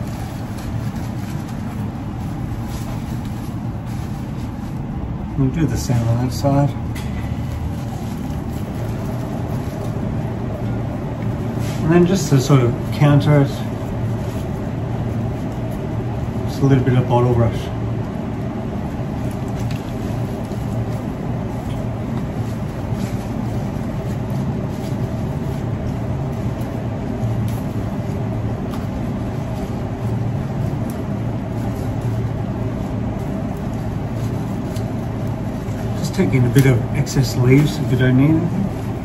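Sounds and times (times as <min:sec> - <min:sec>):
flower stems rustling: 0:00.0 - 0:39.0
low background rumble: 0:00.0 - 0:39.0.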